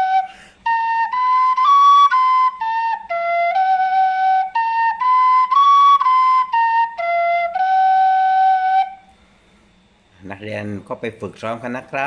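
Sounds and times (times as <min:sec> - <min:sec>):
flute holding a steady note: 0:00.0 - 0:09.2.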